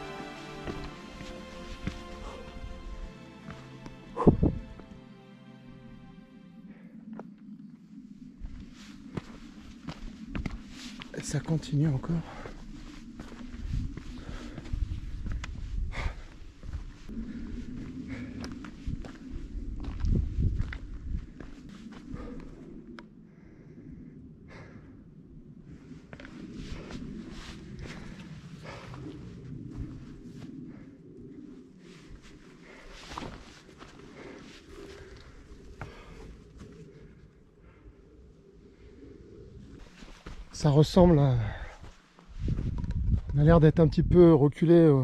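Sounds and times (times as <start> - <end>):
footsteps on rocky path: 0.0 - 5.0, 8.4 - 22.6, 26.0 - 30.1, 32.1 - 36.8, 39.8 - 43.5
low rumble: 5.7 - 40.6.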